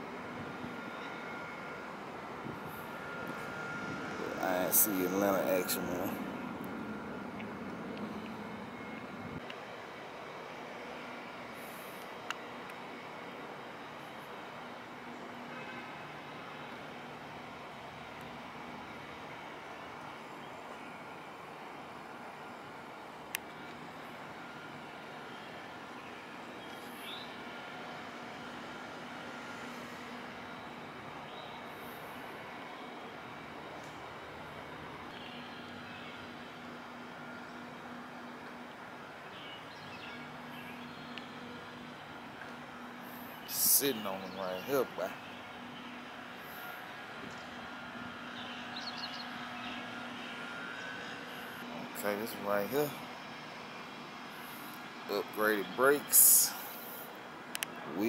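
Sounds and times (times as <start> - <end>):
city background hum: 0.0 - 58.0
faint steady tones: 0.0 - 58.0.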